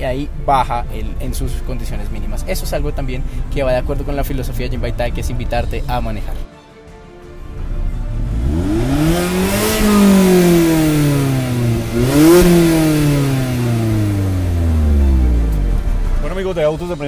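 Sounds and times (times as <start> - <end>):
car engine revving: 7.5 - 17.0.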